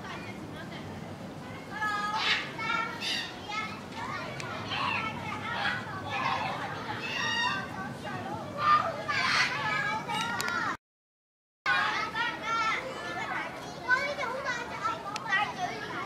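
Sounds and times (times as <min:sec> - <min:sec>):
children chattering and calling out: 0:00.0 - 0:10.8, 0:11.7 - 0:16.0
child shouting: 0:08.5 - 0:10.7.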